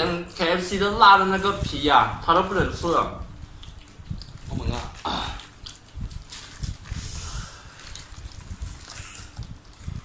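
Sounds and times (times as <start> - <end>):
paper wrapper rustling: 3.4 - 10.0
hissing breaths through mouth: 6.8 - 8.1.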